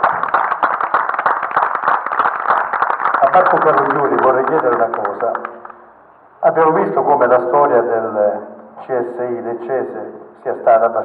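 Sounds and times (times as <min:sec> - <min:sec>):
audience applauding: 0:00.0 - 0:05.8.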